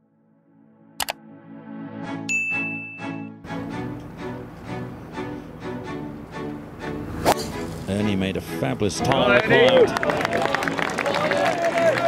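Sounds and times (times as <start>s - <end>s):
soft ambient music: 0.1s - 12.0s
notification bell ding: 2.3s - 3.2s.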